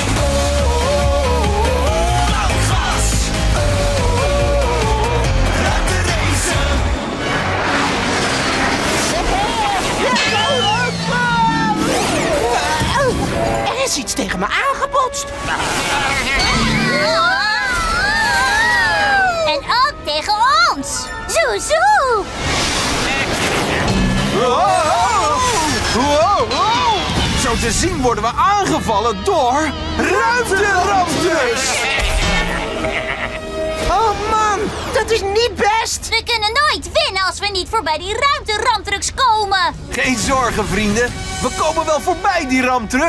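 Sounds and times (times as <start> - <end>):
background music: 0.0 - 43.0
gliding effect tones: 6.6 - 13.8, 15.2 - 19.2
rocket thruster whoosh: 7.0 - 12.7, 22.2 - 24.5
cartoon music: 10.0 - 22.2.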